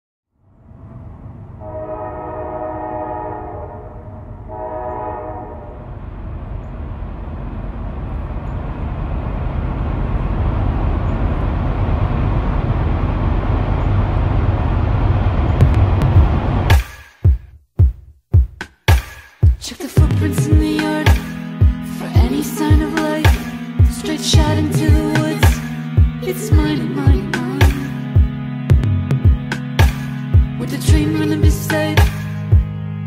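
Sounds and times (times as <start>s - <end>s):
low rumble of passing train: 0.3s - 16.7s
train horn blasts: 1.6s - 6.0s.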